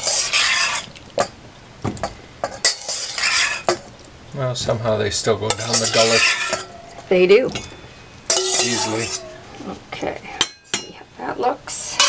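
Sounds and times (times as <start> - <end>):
spoon scraping metal bowl: 0.0 - 0.9, 2.4 - 3.8, 5.5 - 9.4.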